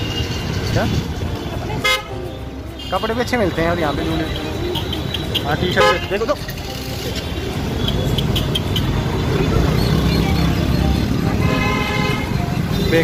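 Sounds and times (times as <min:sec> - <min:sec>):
engine and road rumble: 0:00.0 - 0:13.0
vehicle horn: 0:01.8 - 0:06.3, 0:11.3 - 0:13.0.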